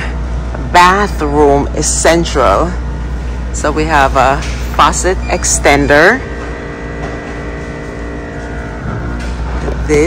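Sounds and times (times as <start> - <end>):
low rumble and hum: 0.0 - 10.0
held steady tones: 1.1 - 10.0.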